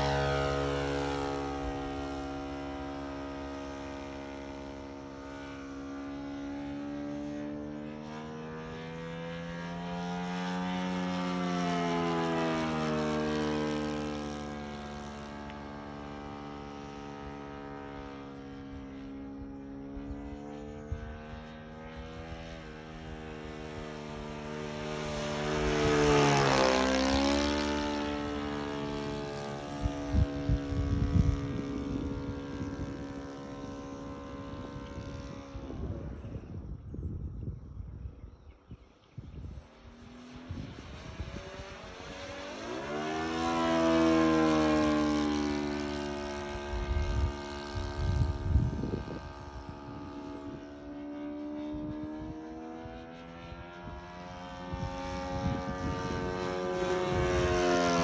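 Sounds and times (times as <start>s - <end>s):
model airplane engine flying overhead: 0.0s - 58.0s.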